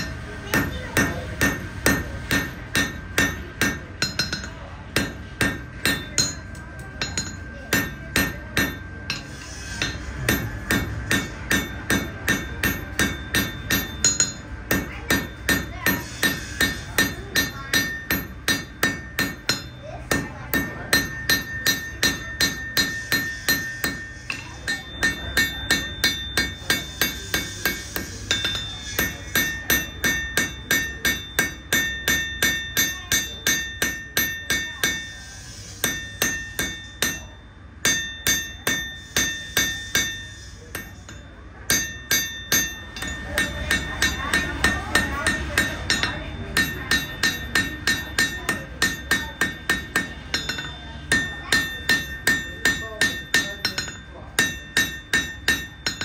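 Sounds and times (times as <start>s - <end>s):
hammer ringing on anvil: 0.0s - 56.0s.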